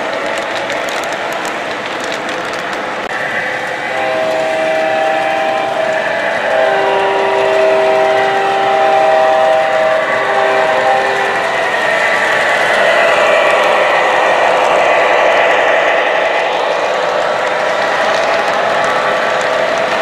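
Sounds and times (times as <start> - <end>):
model train wheels rolling: 0.0 - 20.0
model locomotive horn: 3.8 - 11.8.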